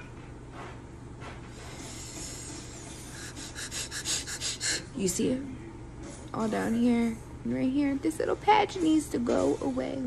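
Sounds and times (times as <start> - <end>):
person breathing: 1.6 - 5.0.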